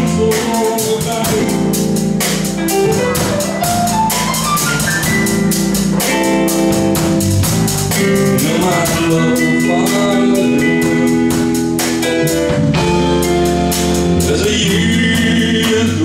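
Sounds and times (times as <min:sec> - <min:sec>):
blues band instrumental: 0:00.0 - 0:16.0.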